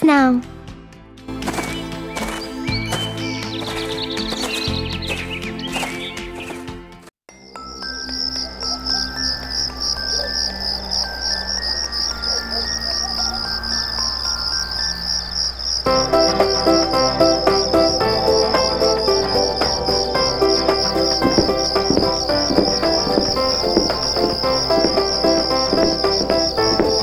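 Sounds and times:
background music: 0:00.0 - 0:27.0
crickets chirping: 0:07.4 - 0:27.0.

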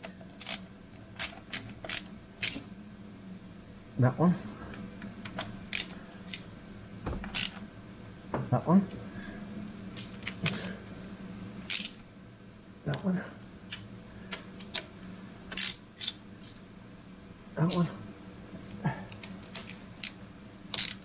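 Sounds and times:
ratchet clicking on bolts: 0:00.4 - 0:00.6, 0:07.3 - 0:07.6, 0:15.5 - 0:16.2, 0:19.6 - 0:21.0.

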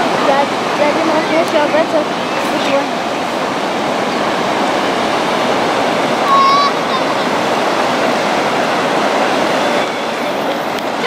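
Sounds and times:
water rushing over weir: 0:00.0 - 0:11.0.

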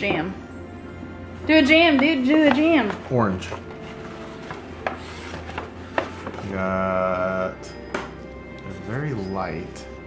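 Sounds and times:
paper bag rustling: 0:02.7 - 0:06.7.

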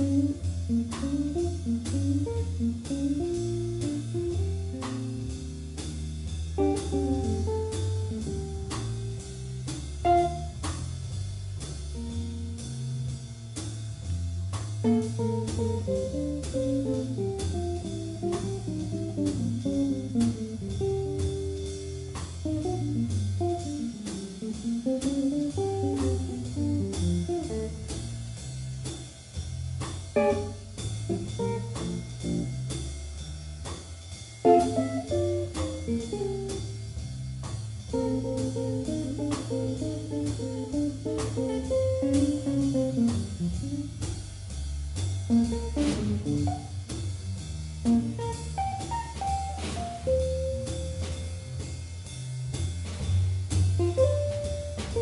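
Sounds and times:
double bass: 0:00.0 - 0:55.0
drum kit: 0:00.0 - 0:55.0
electric guitar solo lines: 0:30.2 - 0:30.6.

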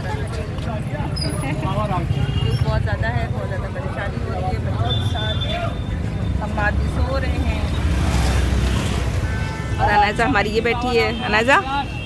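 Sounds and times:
people talking: 0:00.0 - 0:05.8, 0:06.4 - 0:07.8, 0:09.8 - 0:12.0
auto-rickshaw engine rumbling: 0:00.0 - 0:12.0.

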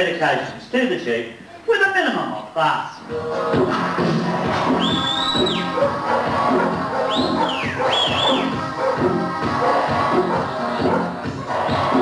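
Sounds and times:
background music with steady beat: 0:02.9 - 0:12.0
shrill whistled calls: 0:04.7 - 0:05.8, 0:07.0 - 0:08.6.

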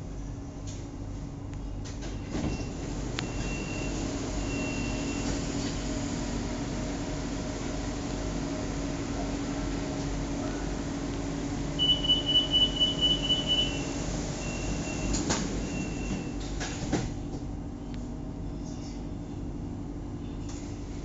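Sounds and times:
train low hum: 0:00.0 - 0:21.0
high warning beeps: 0:11.8 - 0:16.3.

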